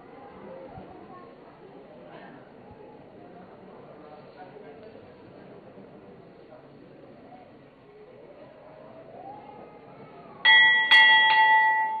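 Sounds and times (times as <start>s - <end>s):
temple bell ringing: 10.4s - 12.0s.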